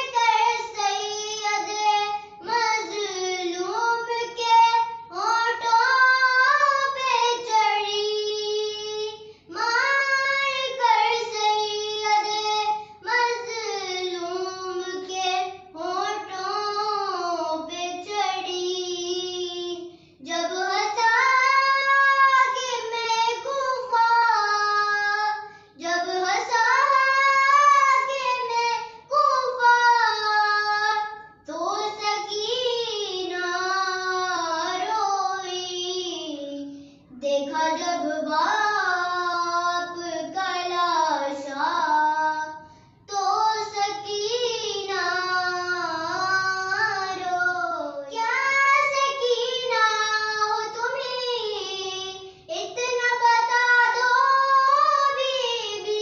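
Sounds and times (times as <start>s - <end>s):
girl chanting a lament: 0.0s - 56.0s.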